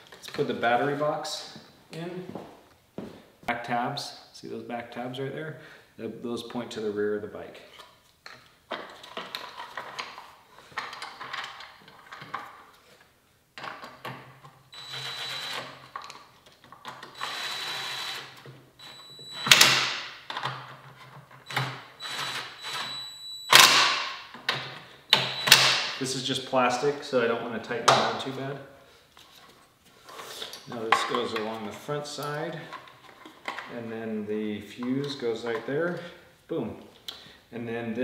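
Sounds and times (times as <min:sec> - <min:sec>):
plastic parts clicking and knocking: 0:08.2 - 0:12.6, 0:20.3 - 0:21.8, 0:32.7 - 0:33.7
cordless drill driving fasteners: 0:14.8 - 0:15.8, 0:16.8 - 0:19.8, 0:21.4 - 0:23.8.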